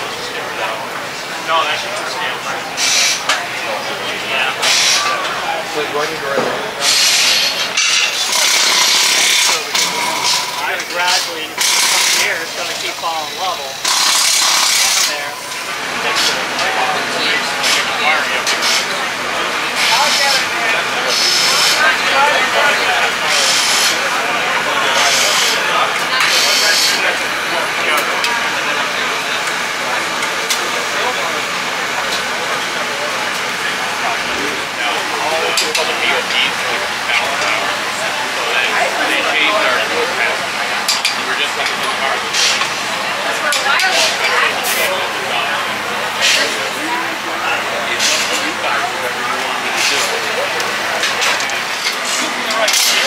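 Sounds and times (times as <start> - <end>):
people chattering: 0.0 - 53.0
steady outdoor noise: 0.0 - 53.0.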